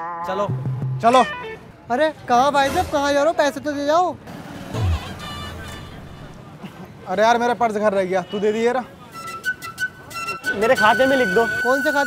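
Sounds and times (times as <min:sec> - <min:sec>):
road traffic noise: 0:01.1 - 0:12.0
vehicle passing: 0:04.2 - 0:06.6.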